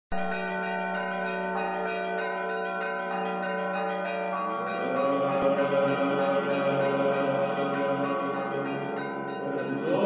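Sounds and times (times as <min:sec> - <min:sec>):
bells ringing in a peal: 0:00.1 - 0:10.0.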